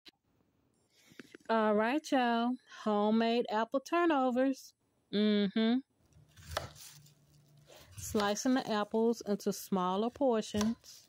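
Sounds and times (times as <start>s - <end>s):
knife slicing apple: 6.1s - 7.1s, 7.7s - 8.8s, 10.0s - 11.0s.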